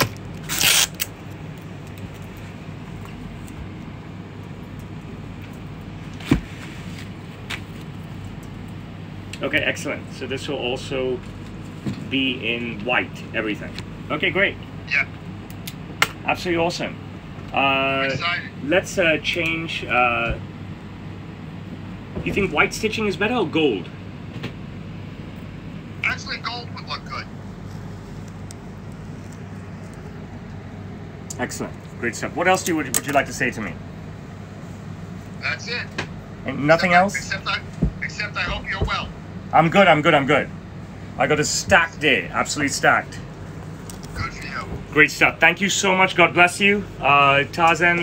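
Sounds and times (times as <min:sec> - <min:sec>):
low room hum with hiss: 0:00.0 - 0:48.0.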